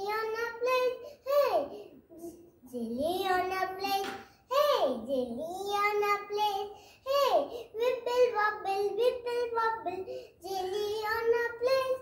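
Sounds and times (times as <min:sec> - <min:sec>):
girl singing alone: 0:00.0 - 0:12.0.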